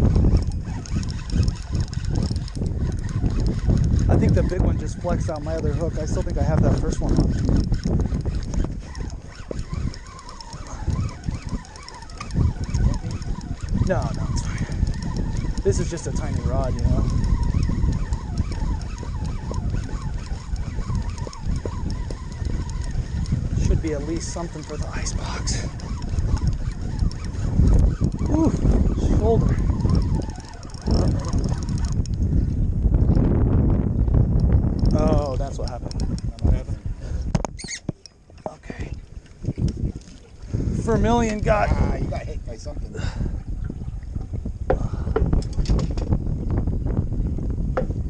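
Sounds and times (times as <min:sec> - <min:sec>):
reel clicks: 0:00.0 - 0:33.3, 0:34.0 - 0:42.7, 0:44.7 - 0:46.8
wind buffeting microphone: 0:00.0 - 0:48.0
fishing reel hissing: 0:07.3 - 0:32.1
faint wavering whine: 0:08.3 - 0:32.6.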